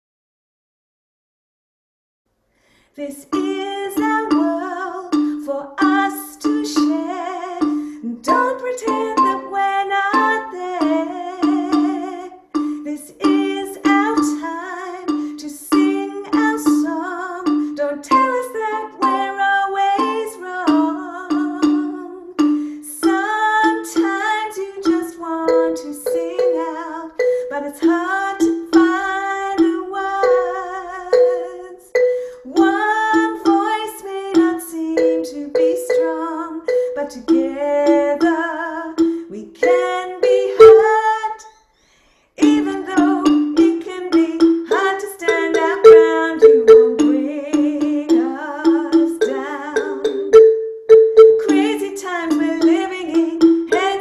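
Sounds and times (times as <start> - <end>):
woman singing: 3.0 - 41.5, 42.4 - 50.3, 51.4 - 54.0
wooden xylophone playing: 3.3 - 41.8, 42.4 - 54.0.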